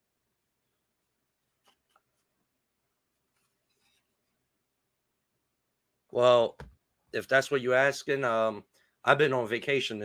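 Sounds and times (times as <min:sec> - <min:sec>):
soft clicks and rustles: 0:01.0 - 0:02.5.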